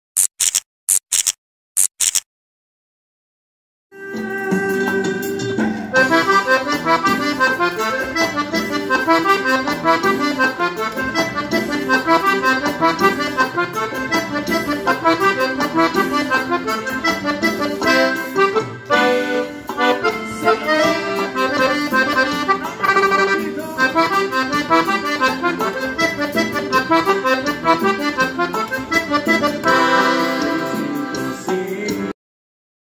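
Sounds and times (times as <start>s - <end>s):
button accordion playing cumbia melody: 4.0s - 32.2s.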